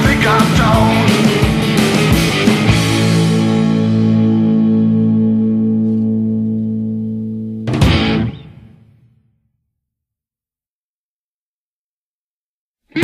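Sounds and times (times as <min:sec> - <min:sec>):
distorted electric guitar ringing: 0:00.0 - 0:09.0
full band final hit: 0:07.6 - 0:09.0.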